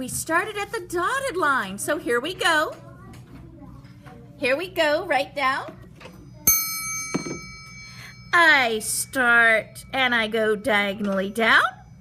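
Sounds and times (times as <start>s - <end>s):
small metal bell ringing: 6.5s - 11.0s.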